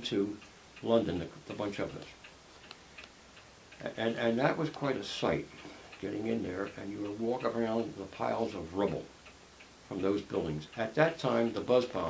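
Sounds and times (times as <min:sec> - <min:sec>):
man talking: 0:00.0 - 0:02.2, 0:03.8 - 0:09.1, 0:09.9 - 0:12.0
faint light ticks: 0:00.0 - 0:12.0.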